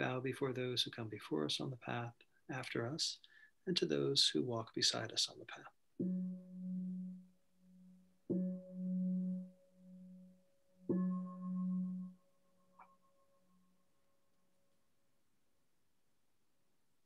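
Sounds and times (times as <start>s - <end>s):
meditation bell ringing: 6.1s - 13.8s.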